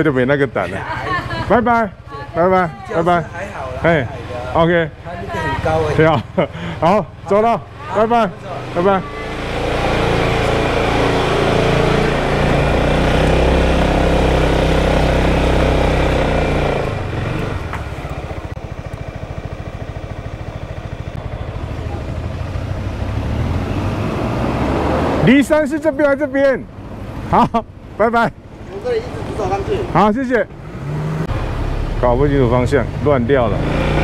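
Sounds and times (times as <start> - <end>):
road noise: 0.0 - 34.0
motorcycle engine accelerating: 0.8 - 34.0.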